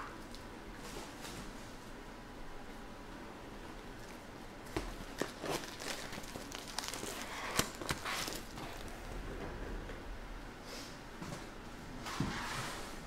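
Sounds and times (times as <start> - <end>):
card wrappers rustling and crinkling: 4.7 - 9.0.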